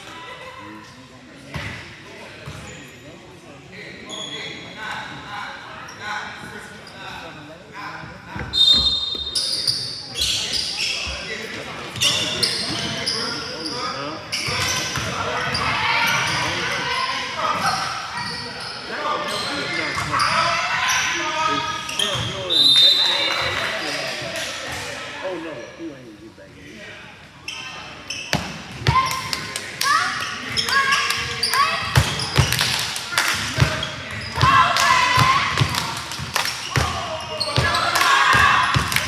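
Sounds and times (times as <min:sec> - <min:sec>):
basketball bouncing on court: 0:31.2 - 0:32.7, 0:33.6 - 0:39.0
voices shouting: 0:33.1 - 0:36.0, 0:36.6 - 0:39.0.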